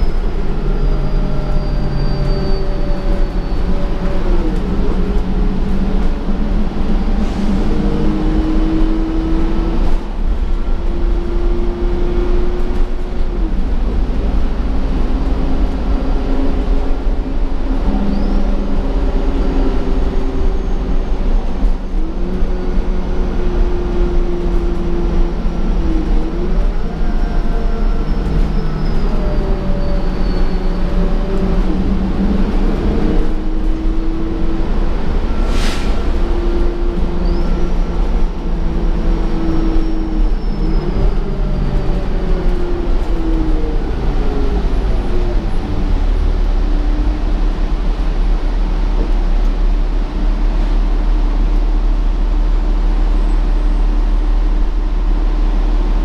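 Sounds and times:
bus engine rumble and whine: 0.0 - 56.0
short hiss: 35.4 - 36.1.

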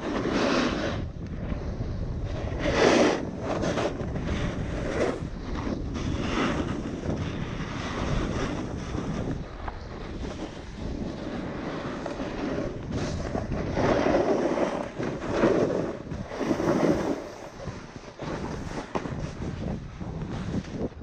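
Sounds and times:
skis scraping through snow: 0.0 - 21.0
wind buffeting microphone: 0.0 - 21.0.

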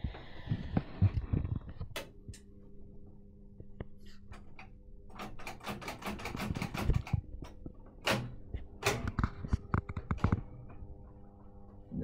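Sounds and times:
low steady hum: 0.0 - 12.0
tape recorder mechanism clicking: 4.4 - 10.5.

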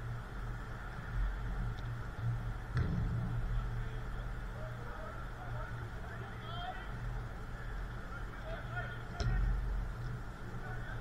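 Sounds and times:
steady low rumble: 0.0 - 11.0
players calling and shouting: 2.8 - 11.0.

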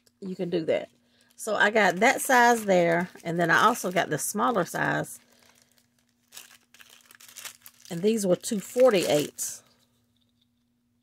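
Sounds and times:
plastic bag crinkling: 0.7 - 9.6.

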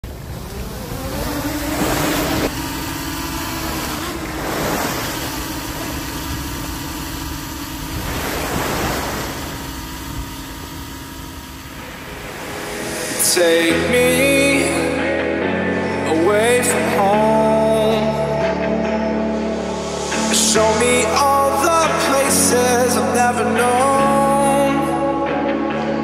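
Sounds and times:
small waves washing onto beach: 0.0 - 13.8
steady engine hum: 0.0 - 26.0.

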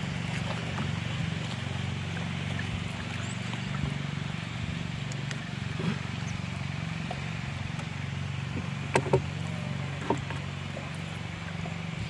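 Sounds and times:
small boat engine running: 0.0 - 12.0.

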